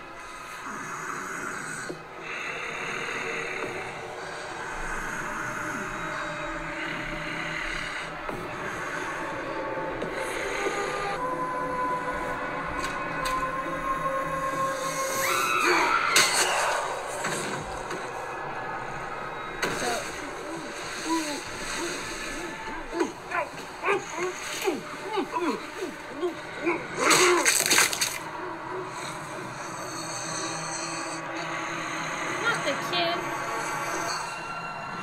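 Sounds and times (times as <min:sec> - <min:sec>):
drama soundtrack music: 0:00.0 - 0:35.0.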